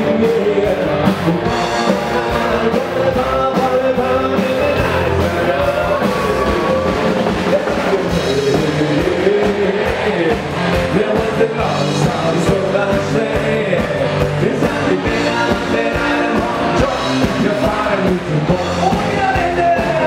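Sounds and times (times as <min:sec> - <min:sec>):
people singing: 0:00.0 - 0:20.0
brass band playing: 0:00.2 - 0:13.0.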